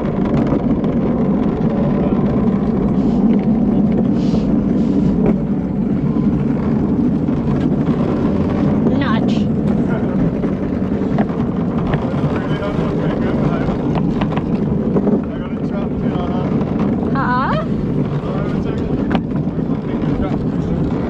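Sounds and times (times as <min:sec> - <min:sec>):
wheels rolling on concrete: 0:00.0 - 0:21.0.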